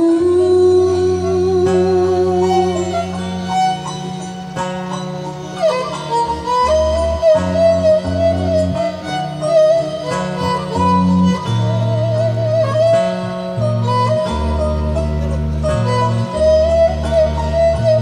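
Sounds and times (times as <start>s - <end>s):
violin melody with vibrato: 0.0s - 18.0s
zithers plucking low notes: 0.0s - 18.0s.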